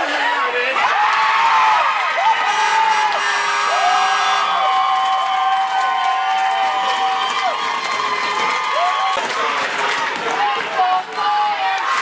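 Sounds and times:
crowd cheering: 0:00.0 - 0:12.0
high-pitched screams and whoops: 0:00.8 - 0:09.3.

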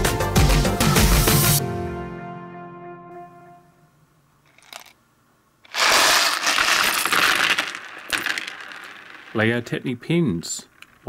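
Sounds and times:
plastic pins clattering on table: 0:04.5 - 0:05.0, 0:05.6 - 0:09.8.

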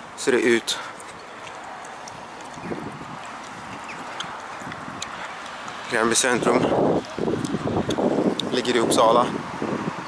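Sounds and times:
steady outdoor hiss: 0:00.0 - 0:10.0
footsteps on paved path: 0:00.6 - 0:08.8.

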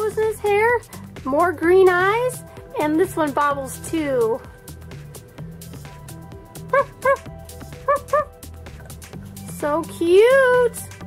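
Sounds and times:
background music with steady beat: 0:00.0 - 0:11.0
high yipping barks: 0:06.7 - 0:08.4.

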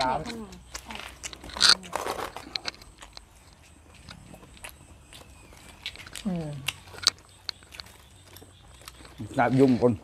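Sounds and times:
people chewing and crunching: 0:00.0 - 0:10.0.

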